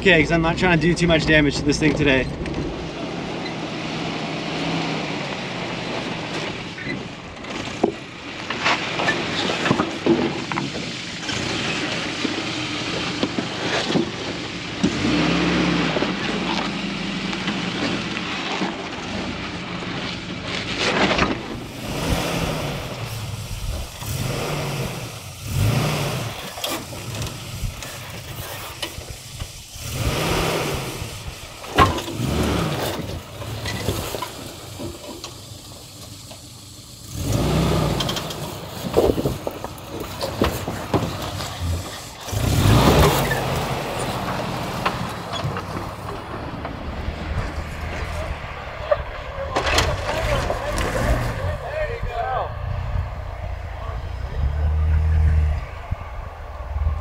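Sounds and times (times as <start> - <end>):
engine revving in bursts: 14.8 - 18.0, 21.4 - 29.0, 29.7 - 34.4, 37.0 - 40.0, 41.2 - 48.8.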